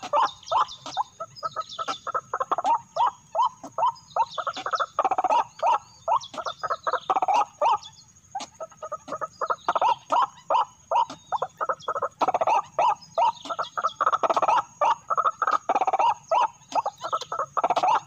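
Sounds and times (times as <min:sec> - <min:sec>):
bird harsh croaking calls: 0:00.0 - 0:18.0.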